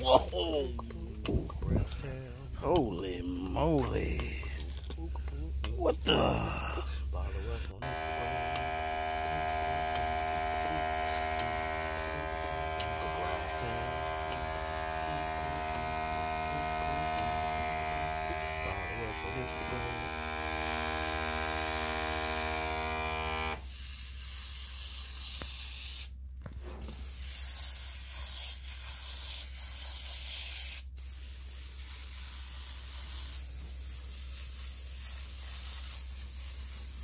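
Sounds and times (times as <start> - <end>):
low hum: 0.0 - 23.6
sprayer pump motor whining: 7.8 - 23.7.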